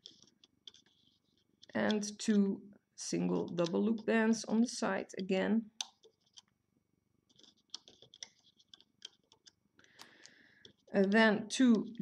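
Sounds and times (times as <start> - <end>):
rubber bands rustling: 7.3 - 11.0
faint plastic clicks: 7.7 - 12.0.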